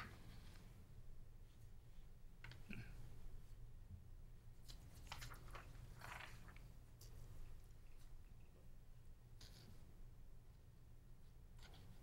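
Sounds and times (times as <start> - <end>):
low steady room hum: 0.0 - 12.0
paper sheets rustling: 4.6 - 7.2.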